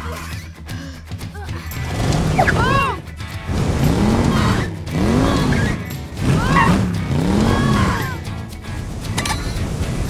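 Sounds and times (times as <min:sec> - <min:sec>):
background music: 0:00.0 - 0:10.0
swooping tones: 0:01.8 - 0:08.4.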